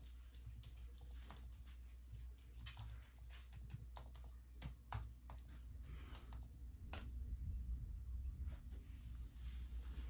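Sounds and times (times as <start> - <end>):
keyboard typing clicks: 0.0 - 5.6.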